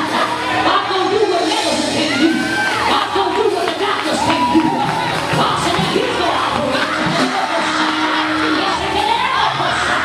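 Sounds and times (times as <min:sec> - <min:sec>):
congregation calling out and singing: 0:00.0 - 0:10.0.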